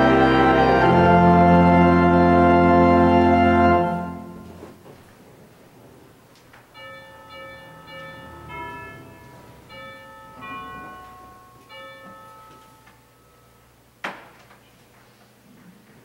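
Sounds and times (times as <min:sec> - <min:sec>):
church organ sustained notes: 0:00.0 - 0:04.8, 0:06.8 - 0:14.0.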